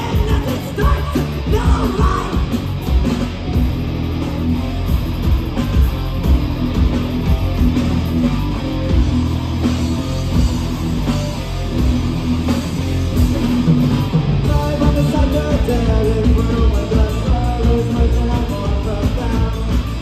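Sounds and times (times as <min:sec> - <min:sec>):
bass guitar: 0:00.0 - 0:20.0
distorted electric guitars: 0:00.0 - 0:20.0
drum kit: 0:00.0 - 0:20.0.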